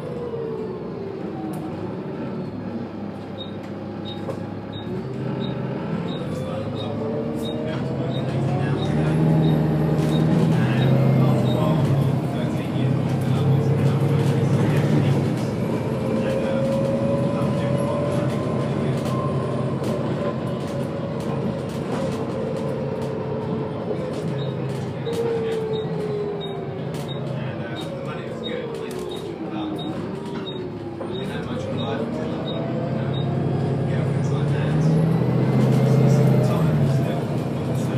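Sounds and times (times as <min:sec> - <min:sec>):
bus diesel engine: 0:00.0 - 0:37.9.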